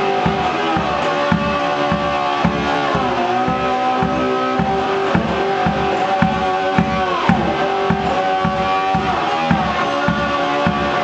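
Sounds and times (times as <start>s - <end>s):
low thumping beat: 0.0s - 11.0s
slide guitar: 0.0s - 11.0s.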